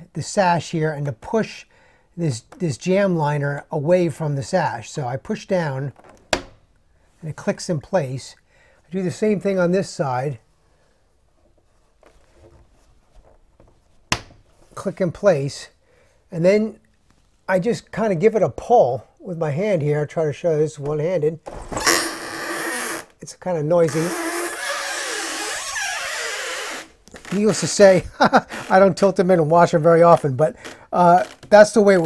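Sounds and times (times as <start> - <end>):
faint squeaks: 23.8 - 27.7.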